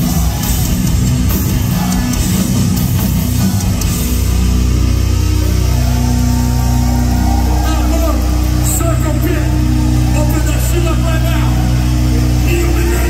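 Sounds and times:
distorted guitar and bass drone: 0.0 - 13.0
shouted voices: 1.4 - 4.7, 5.5 - 13.0.

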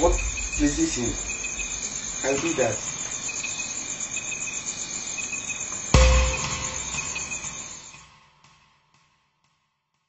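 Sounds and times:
crickets chirping: 0.0 - 8.4
loud low boom: 6.0 - 7.4
ringing held tone: 6.0 - 7.8.

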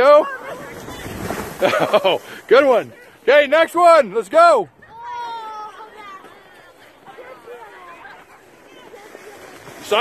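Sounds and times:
distant children's voices: 4.7 - 9.9.

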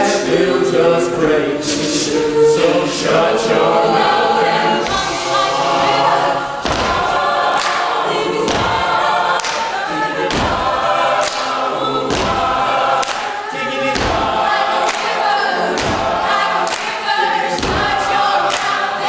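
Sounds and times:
a cappella group singing: 0.0 - 19.0
percussive beat: 4.8 - 19.0.

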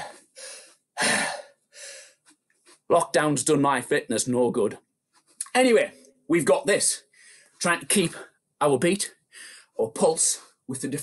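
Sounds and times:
man breathing hard: 0.0 - 2.2.

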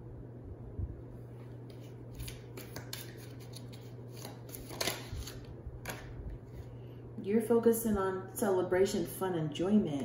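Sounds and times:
steady low hum: 0.0 - 10.0
cards shuffling: 1.6 - 6.7.

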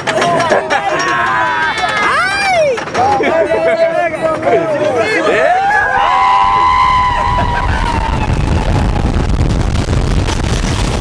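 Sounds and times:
coaster train on track: 0.0 - 11.0
riders screaming: 0.3 - 2.8, 5.0 - 9.2
wind rushing on microphone: 5.7 - 11.0.

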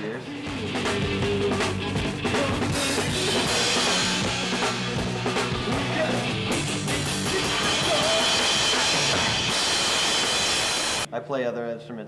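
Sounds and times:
rock music with drums and guitar: 0.2 - 11.1.

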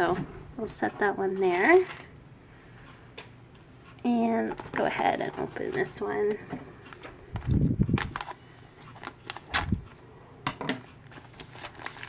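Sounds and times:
plastic film crackling: 7.4 - 9.9, 11.0 - 12.0.

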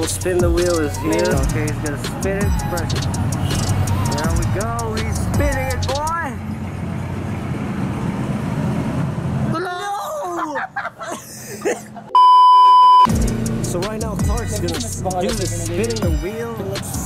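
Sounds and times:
voices exclaiming and laughing: 9.5 - 12.0, 14.2 - 16.1.

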